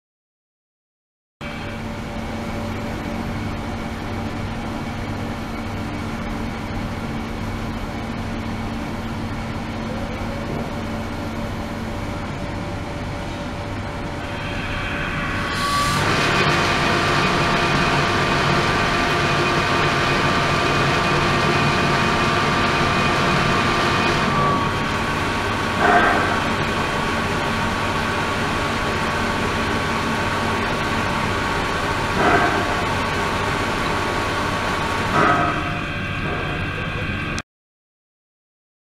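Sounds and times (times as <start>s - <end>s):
machine hum with tones: 1.4s - 37.4s.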